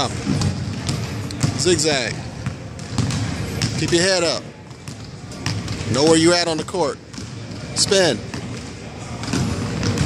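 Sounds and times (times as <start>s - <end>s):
basketball dribbling on wooden floor: 0.2s - 10.0s.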